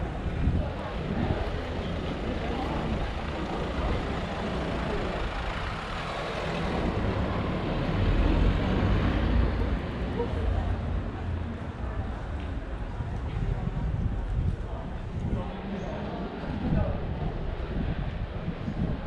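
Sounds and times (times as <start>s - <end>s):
vehicle engine rumbling: 0.0s - 15.7s
people's voices: 0.0s - 19.0s
traffic noise: 0.0s - 19.0s.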